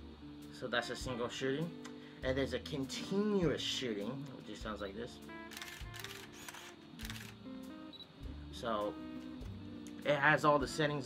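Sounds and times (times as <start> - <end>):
soft background music: 0.0 - 11.0
camera shutter and film advance: 5.5 - 8.1.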